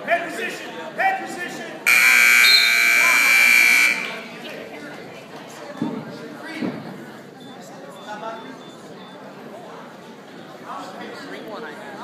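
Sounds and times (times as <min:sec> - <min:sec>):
scoreboard buzzer: 0:01.9 - 0:04.4.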